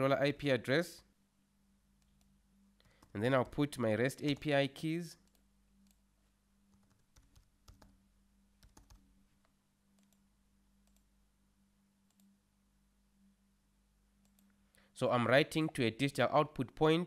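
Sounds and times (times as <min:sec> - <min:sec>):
faint steady hum: 0:00.0 - 0:17.0
keyboard typing: 0:06.7 - 0:08.0, 0:08.6 - 0:09.1
mouse clicks: 0:12.1 - 0:12.3.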